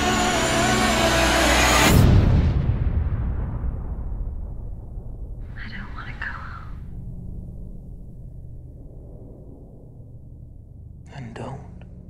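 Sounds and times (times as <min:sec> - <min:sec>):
low steady drone: 0:04.4 - 0:12.0
breathy whispered word: 0:05.5 - 0:06.9.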